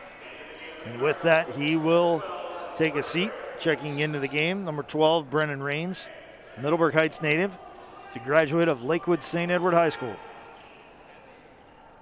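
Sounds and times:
faint hum of hall and crowd: 0:00.0 - 0:12.0.

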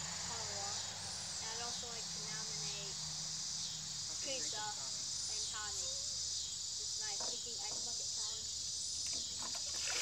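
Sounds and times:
crickets chirping: 0:00.0 - 0:10.0.

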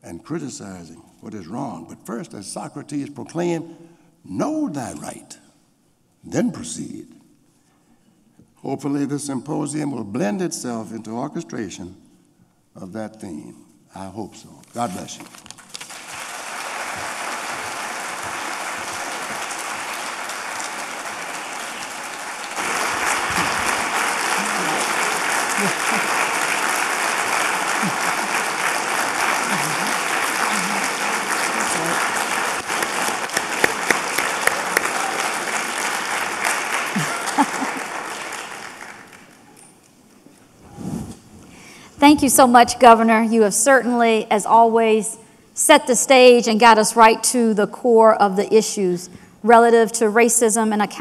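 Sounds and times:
audience applauding: 0:15.7 - 0:39.7.

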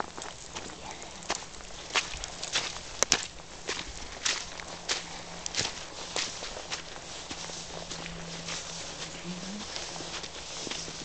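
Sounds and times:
footsteps in snow: 0:01.8 - 0:11.0.

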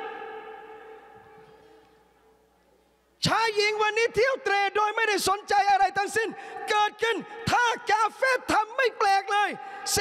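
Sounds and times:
man shouting through public address: 0:03.2 - 0:10.0.

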